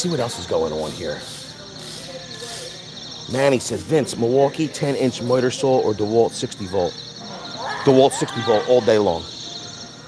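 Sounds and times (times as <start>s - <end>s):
steady hiss: 0.0s - 6.8s
distant voices: 0.0s - 10.0s.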